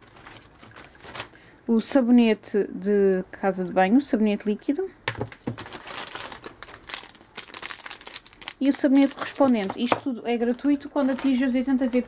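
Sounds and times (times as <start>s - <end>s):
plastic wrapping crinkling: 0.0s - 1.4s, 5.1s - 12.0s.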